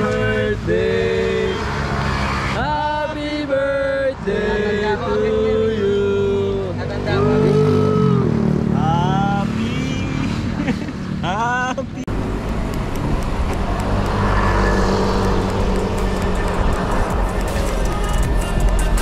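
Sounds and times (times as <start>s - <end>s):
bicycle road rumble: 0.0s - 19.0s
wind buffeting: 12.1s - 18.3s
music with gliding vocal: 15.8s - 19.0s.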